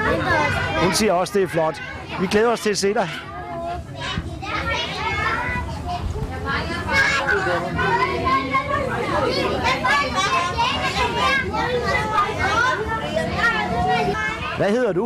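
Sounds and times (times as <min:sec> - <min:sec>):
children chattering: 0:00.0 - 0:15.0.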